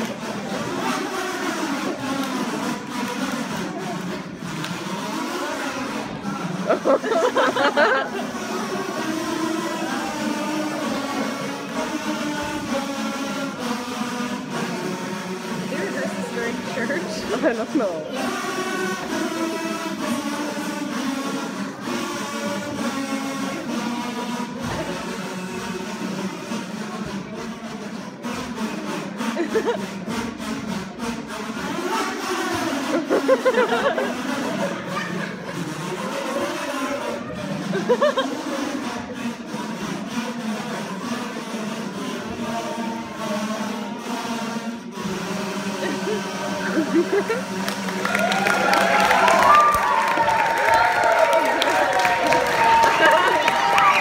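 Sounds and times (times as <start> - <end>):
kazoos buzzing together: 0.0 - 54.0.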